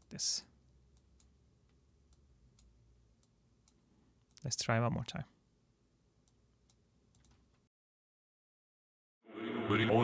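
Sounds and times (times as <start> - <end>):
light ticking: 0.0 - 4.5.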